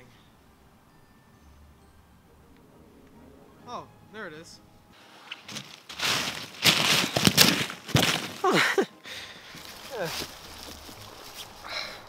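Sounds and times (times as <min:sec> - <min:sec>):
dry leaves rustling and crunching: 0:05.0 - 0:12.0.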